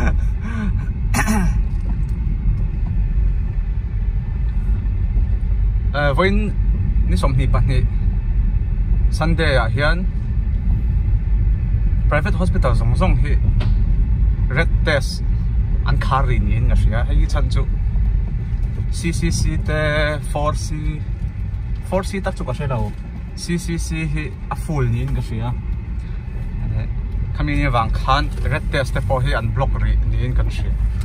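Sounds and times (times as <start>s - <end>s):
car cabin road rumble: 0.0s - 31.0s.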